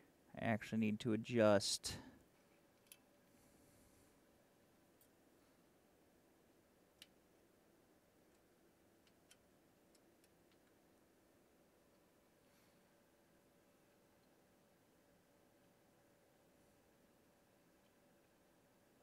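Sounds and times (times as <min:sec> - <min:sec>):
faint clicks: 0:06.9 - 0:07.2.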